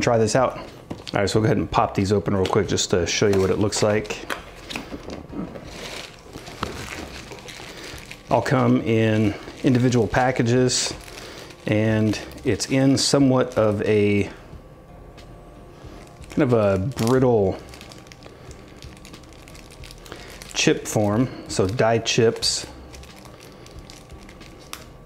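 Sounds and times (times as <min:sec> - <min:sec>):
plastic bags crinkling: 0:02.0 - 0:14.3, 0:15.8 - 0:25.0.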